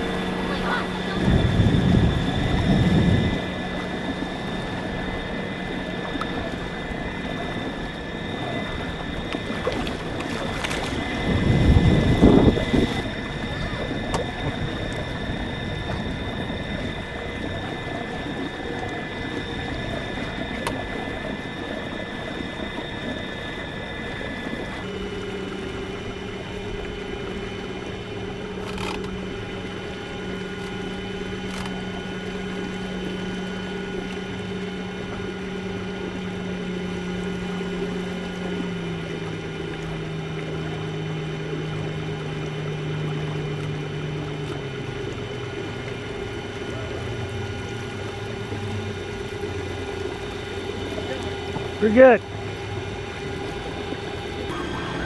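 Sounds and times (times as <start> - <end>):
small boat motor whining: 0.0 - 55.0.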